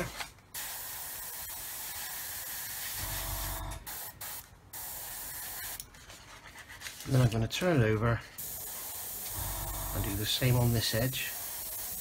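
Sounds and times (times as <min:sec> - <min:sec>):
airbrush spraying hiss: 0:00.6 - 0:05.8, 0:08.3 - 0:12.0.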